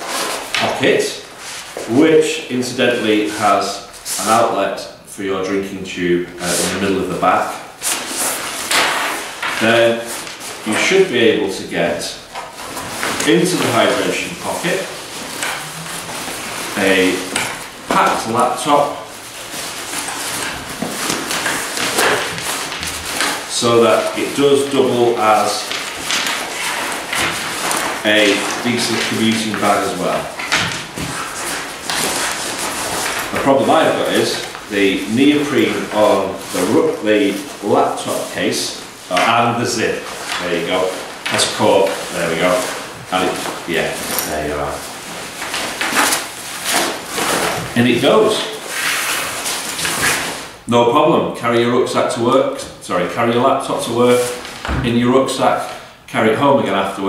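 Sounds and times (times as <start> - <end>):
fabric rustling and scraping: 0.0 - 2.0, 6.4 - 50.6.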